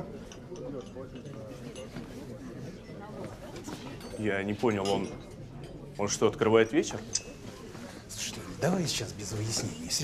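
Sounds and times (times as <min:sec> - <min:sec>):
faint chatter of voices: 0:00.0 - 0:10.0.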